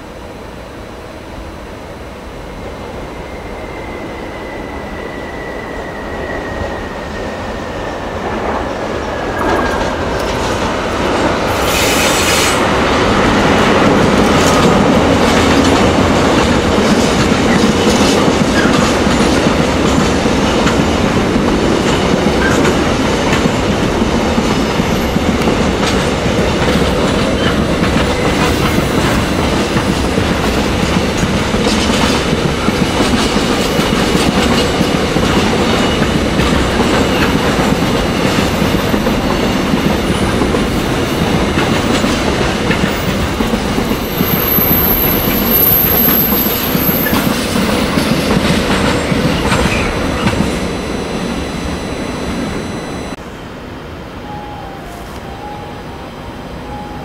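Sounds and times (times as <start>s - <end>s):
falling high tone: 48.9s - 57.0s.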